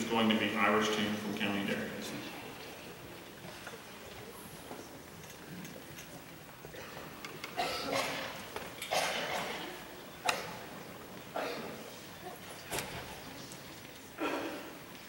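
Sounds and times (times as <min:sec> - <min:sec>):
concert hall room noise: 0:00.0 - 0:15.0.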